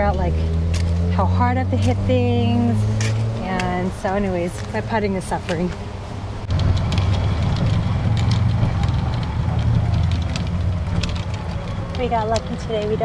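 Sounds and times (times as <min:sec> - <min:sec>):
golf cart running hum: 0:00.0 - 0:13.0
light clicks and rattles: 0:06.4 - 0:13.0.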